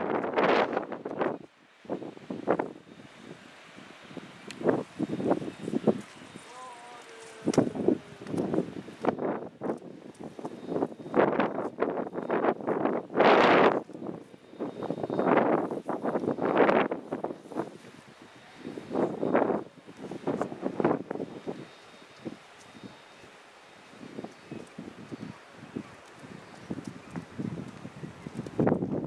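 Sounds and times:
gusty wind on microphone: 0.0 - 6.4, 7.4 - 23.1, 23.9 - 29.0.

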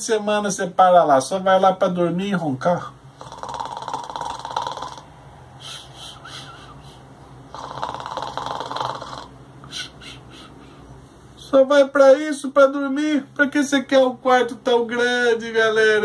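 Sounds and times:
man imitating snoring: 3.2 - 5.1, 7.5 - 9.3
soft breaths: 5.6 - 11.5.

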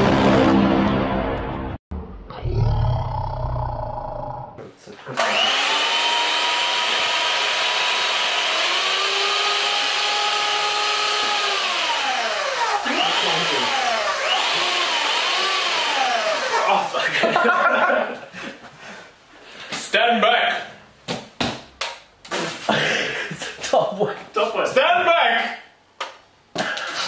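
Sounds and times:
electric hand mixer whining: 5.2 - 16.8.

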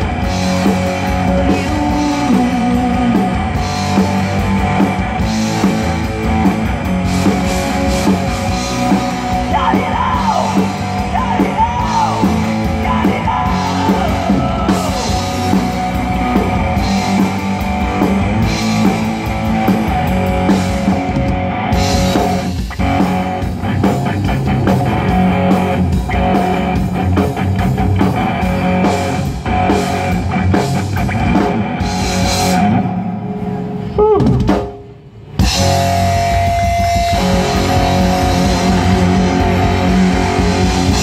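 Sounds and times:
bass guitar: 0.0 - 41.0
drum kit: 0.0 - 41.0
electric guitars: 0.0 - 41.0.

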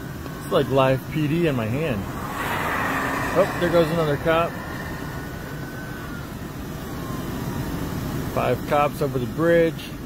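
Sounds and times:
highway traffic noise: 0.8 - 8.4
faint thin falling tone: 1.3 - 7.6.

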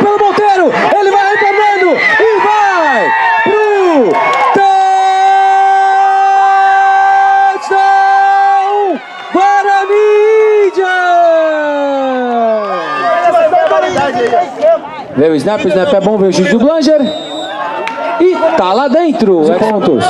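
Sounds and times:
man's long loud shout: 0.0 - 13.6
man talking excitedly: 0.0 - 17.2, 18.1 - 20.0.

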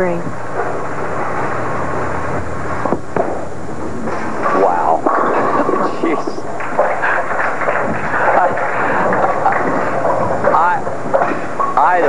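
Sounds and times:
bowling ball thump: 2.8 - 4.4
bowling ball rolling on wooden lane: 2.8 - 11.8
bowling pins crashing: 2.8 - 12.0.

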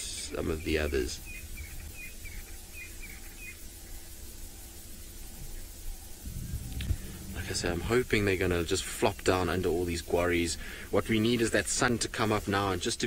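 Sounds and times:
bird chirping: 0.0 - 11.6
low steady hum and rumble: 0.0 - 13.0.

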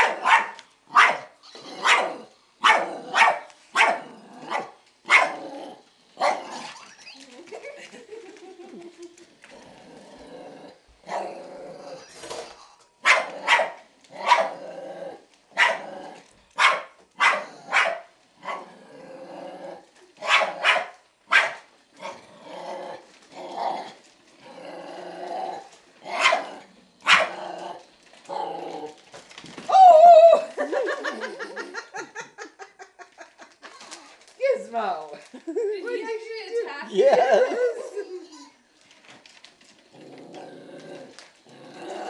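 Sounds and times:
small dog barking: 0.0 - 5.4, 13.0 - 14.6, 15.6 - 15.8, 16.6 - 18.6, 20.2 - 21.6, 26.2 - 27.3
dog growling: 4.0 - 4.7, 5.3 - 7.5, 8.6 - 12.7, 14.1 - 16.4, 18.4 - 20.0, 22.0 - 29.2, 39.8 - 42.0.

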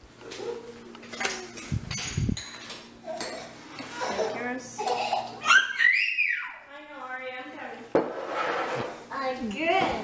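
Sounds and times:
cups and glasses clinking: 1.2 - 3.5.

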